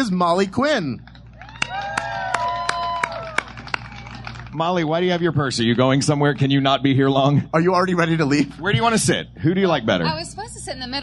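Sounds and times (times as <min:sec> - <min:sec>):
audience clapping: 0:01.1 - 0:05.6
audience whooping: 0:01.4 - 0:04.4.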